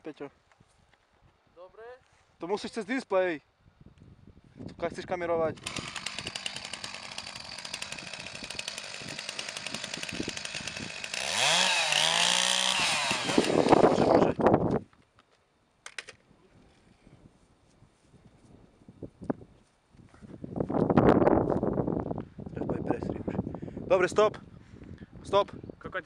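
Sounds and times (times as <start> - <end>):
chainsaw running: 5.5 - 14.4.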